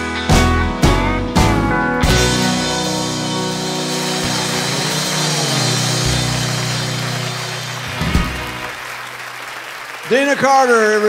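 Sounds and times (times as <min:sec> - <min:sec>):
country band final chord: 0:00.0 - 0:08.9
audience applauding: 0:02.2 - 0:11.0.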